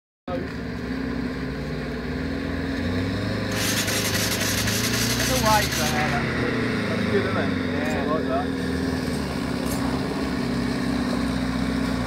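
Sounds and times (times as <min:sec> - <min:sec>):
van engine running: 0:00.3 - 0:12.0.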